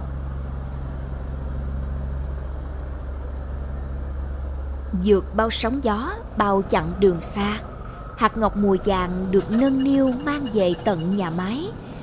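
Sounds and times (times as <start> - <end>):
boat engine droning: 0.0 - 12.0.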